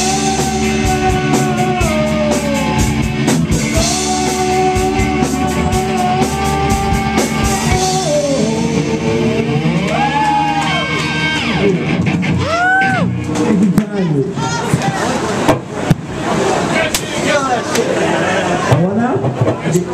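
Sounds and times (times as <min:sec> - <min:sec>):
drum kit: 0:00.0 - 0:13.8
electric guitars: 0:00.0 - 0:16.7.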